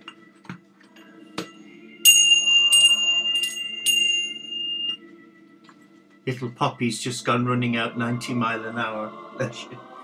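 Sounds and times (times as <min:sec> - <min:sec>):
small high-pitched bell ringing: 0:02.1 - 0:05.0.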